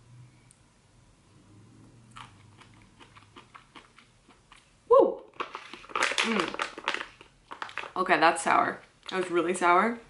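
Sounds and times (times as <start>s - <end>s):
person chewing food: 2.0s - 7.8s.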